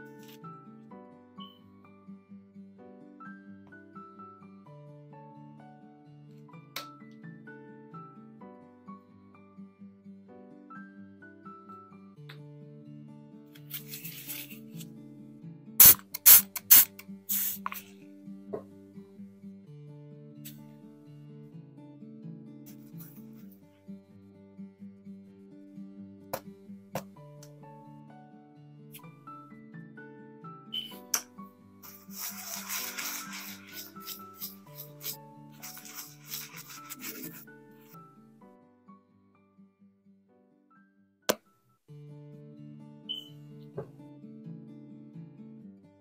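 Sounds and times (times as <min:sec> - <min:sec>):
background music: 0:00.0 - 0:39.6
brush scrubbing a coin: 0:13.8 - 0:14.6, 0:31.8 - 0:37.4
spray bottle squirting: 0:15.8 - 0:17.8, 0:31.8 - 0:37.4.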